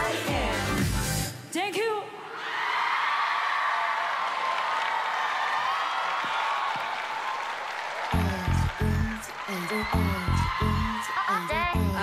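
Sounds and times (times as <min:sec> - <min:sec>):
audience cheering and applauding: 0:02.4 - 0:12.0.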